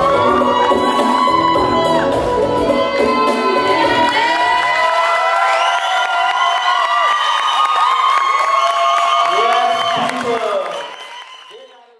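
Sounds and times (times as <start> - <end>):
crowd cheering and whooping: 0.0 - 11.9
people clapping: 3.9 - 11.9.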